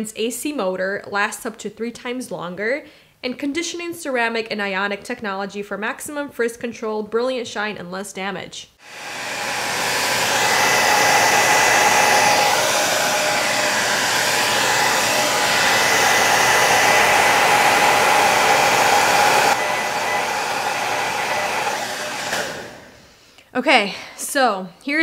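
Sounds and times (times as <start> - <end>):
hair dryer blowing: 8.8 - 23.2.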